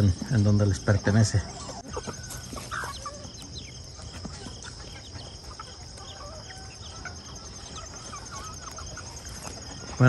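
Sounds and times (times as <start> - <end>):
chickens clucking and peeping: 0.0 - 10.0.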